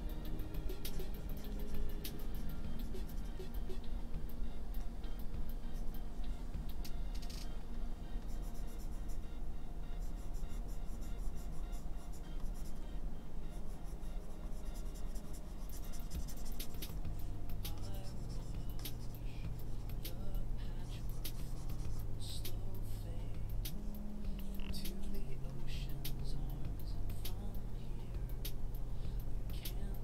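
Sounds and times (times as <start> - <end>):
quiet background music: 0.0 - 30.0.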